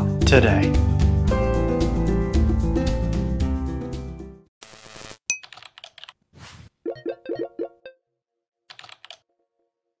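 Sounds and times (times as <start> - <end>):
keyboard typing clicks: 8.7 - 9.2.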